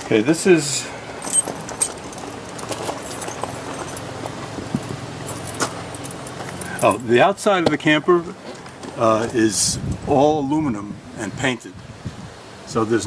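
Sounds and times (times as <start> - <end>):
keys jangling: 1.2 - 7.2.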